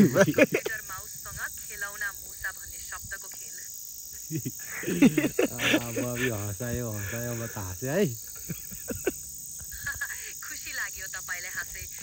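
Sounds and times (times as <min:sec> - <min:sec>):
insects chirring: 0:00.0 - 0:12.0
people's voices: 0:00.0 - 0:12.0.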